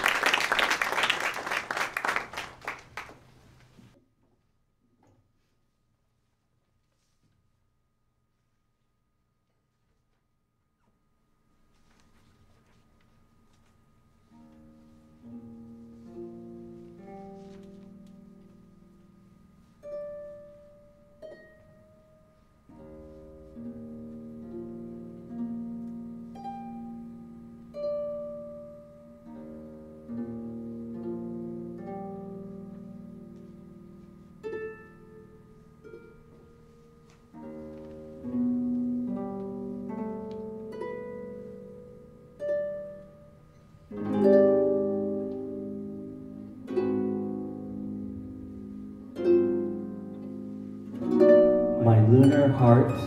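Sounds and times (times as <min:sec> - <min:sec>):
harp playing plucked notes: 0:14.2 - 0:53.0.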